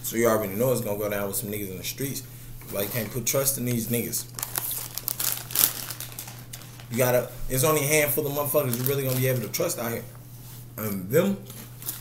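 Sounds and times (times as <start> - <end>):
plastic packet crackling: 4.3 - 7.2, 8.0 - 9.8.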